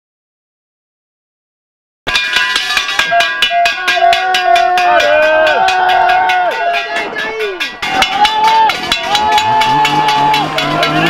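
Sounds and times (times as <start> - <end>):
cowbells ringing: 2.1 - 11.0
spectators shouting cheers: 2.6 - 11.0.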